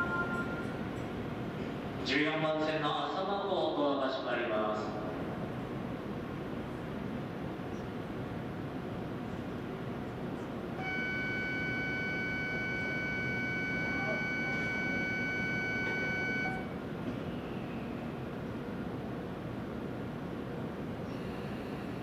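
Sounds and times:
electronic departure bell ringing: 0.0 - 0.9, 10.8 - 16.7
station hum: 0.0 - 2.0, 5.1 - 17.2.

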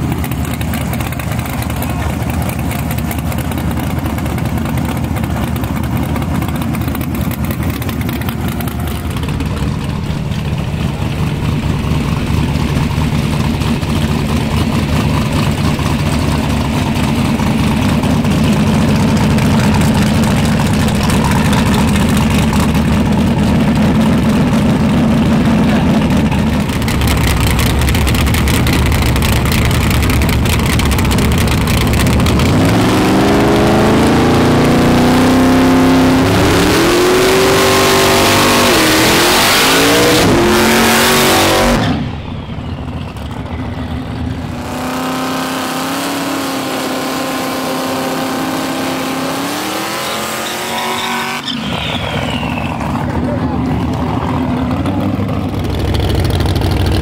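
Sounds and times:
car engines revving: 0.0 - 57.0.

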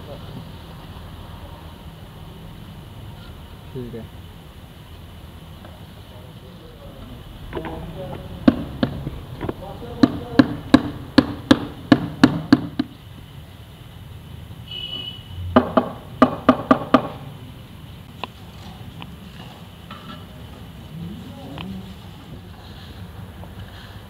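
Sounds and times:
sharp taps on ceramic tile: 7.6 - 12.9.

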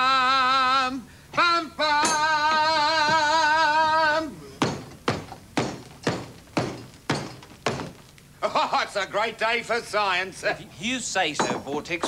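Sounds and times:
thuds: 4.6 - 8.0.

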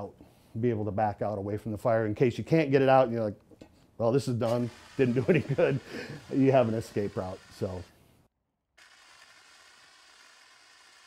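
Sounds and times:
fire extinguisher hissing: 4.5 - 7.9.

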